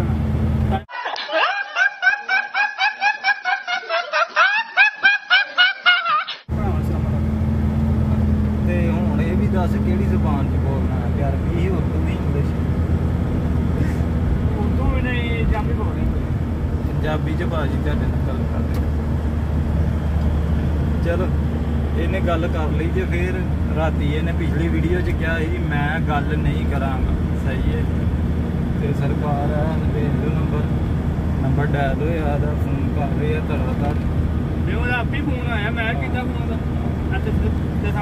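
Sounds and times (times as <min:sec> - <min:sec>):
truck engine droning: 0:00.0 - 0:00.9, 0:06.5 - 0:38.0
young man's high-pitched laugh: 0:00.9 - 0:06.4.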